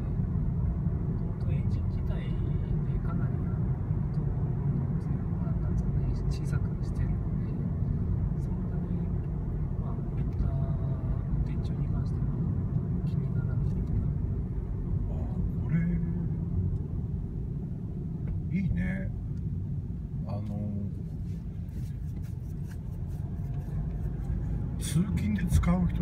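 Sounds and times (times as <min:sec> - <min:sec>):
diesel engine rumble in car cabin: 0:00.0 - 0:26.0
tyre and road noise: 0:00.0 - 0:26.0.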